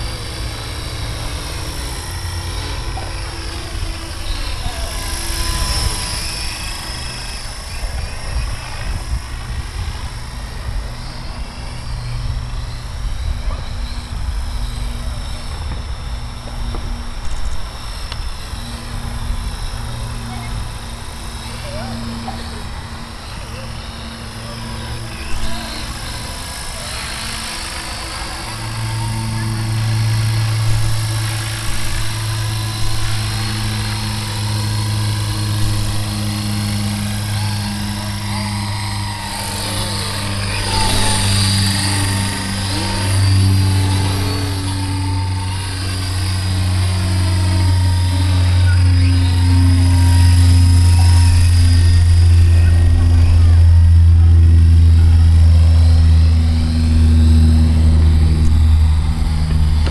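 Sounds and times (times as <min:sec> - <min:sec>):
helicopter rotor drone: 0:00.0 - 0:59.9
thin motor whine: 0:00.0 - 0:59.9.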